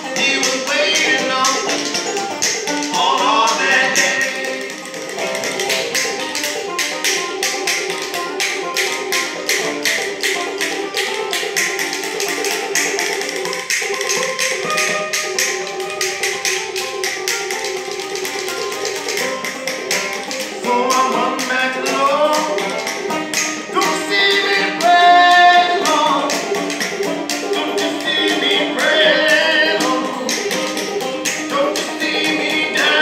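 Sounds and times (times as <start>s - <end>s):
banjo playing: 0.0s - 33.0s
clicking hand percussion: 0.0s - 33.0s.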